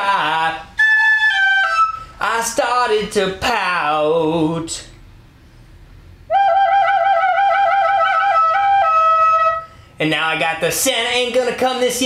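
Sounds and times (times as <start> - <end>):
plastic recorder playing: 6.3 - 9.6.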